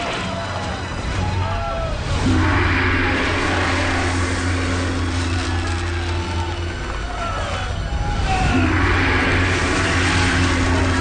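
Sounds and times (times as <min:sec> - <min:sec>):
large gong ringing: 0:02.0 - 0:11.0.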